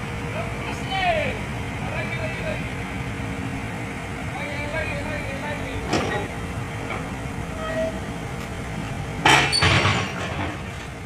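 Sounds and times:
heavy vehicle engine running: 0.0s - 11.0s.

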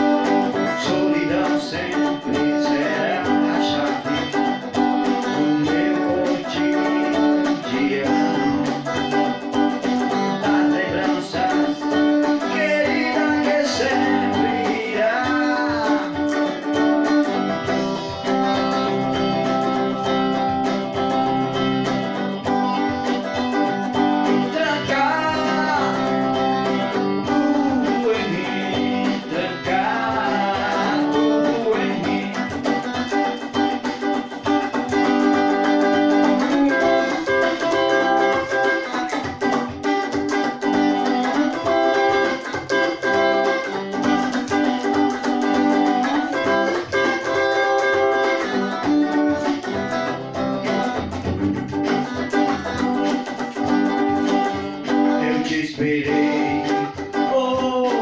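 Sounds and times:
electric guitar playing: 0.0s - 58.0s.

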